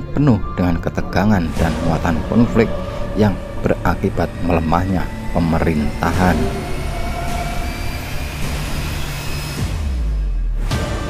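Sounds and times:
droning background music: 0.0 - 11.0
low rumble: 0.7 - 9.6.

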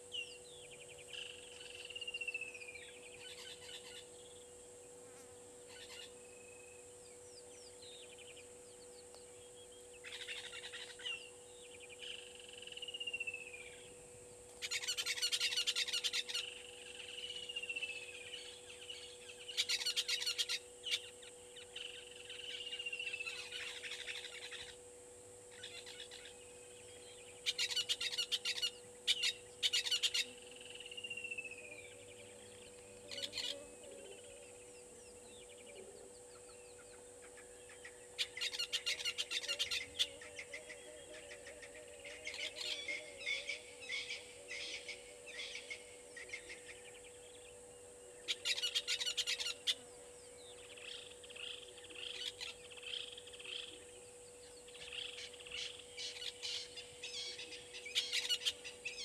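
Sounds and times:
faint hum: 0.0 - 59.0.

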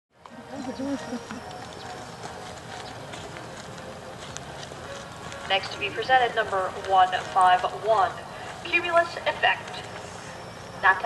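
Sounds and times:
hooves clopping on hard path: 0.2 - 10.9
crowd chatter: 0.2 - 11.0
public address voice: 0.5 - 2.1, 5.5 - 10.0.

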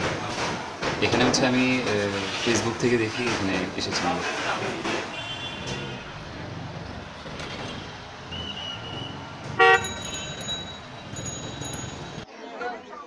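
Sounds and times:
road traffic rumble: 0.0 - 12.3
vehicle horns: 5.0 - 6.3, 7.7 - 10.4
short loud honk: 9.6 - 9.9
high thin horn: 9.6 - 10.0.

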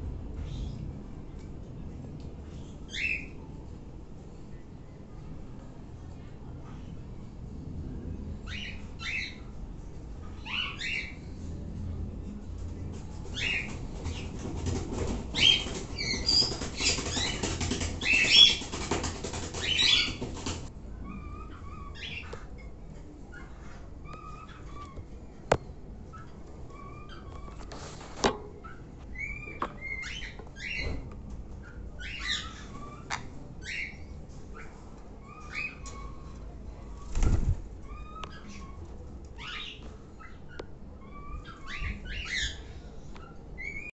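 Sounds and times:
birds rustling and fluttering: 12.3 - 43.9.

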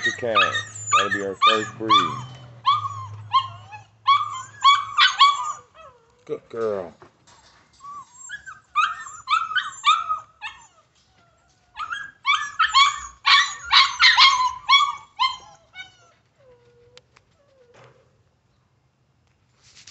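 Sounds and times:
dog whining and yelping: 0.0 - 6.2, 7.3 - 18.2.

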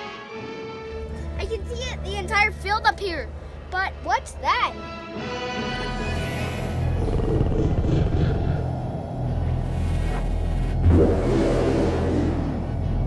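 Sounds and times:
eerie music: 0.0 - 13.0
low hum and rumble: 5.9 - 13.0.

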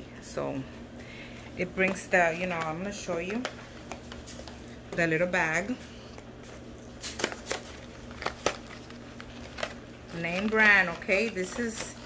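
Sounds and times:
plastic wrapper crinkling: 6.2 - 12.0.

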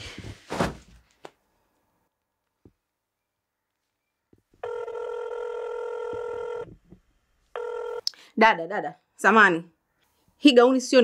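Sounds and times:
phone ringback tone: 4.6 - 6.7, 7.6 - 8.0.

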